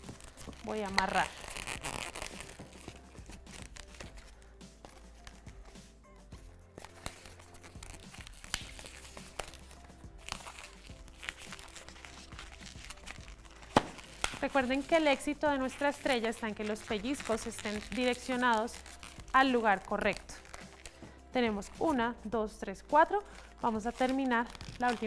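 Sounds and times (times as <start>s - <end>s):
balloon rubbing and clicking: 0.0s - 5.9s
faint background music: 0.0s - 25.0s.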